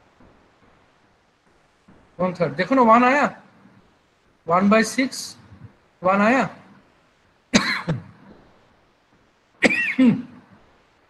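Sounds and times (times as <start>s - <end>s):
person coughing: 7.6s - 8.2s, 9.6s - 10.5s.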